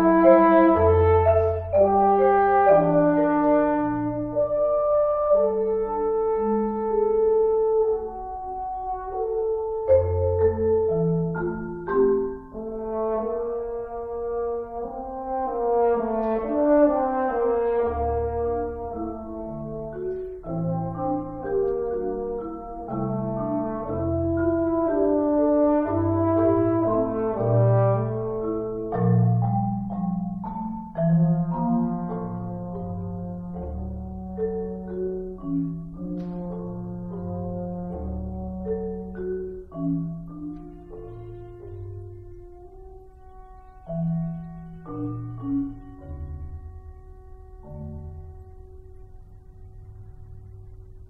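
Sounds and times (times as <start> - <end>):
french horn slow melody: 0.0 - 10.9, 12.6 - 29.0
soft marimba mallet strokes: 18.0 - 51.0.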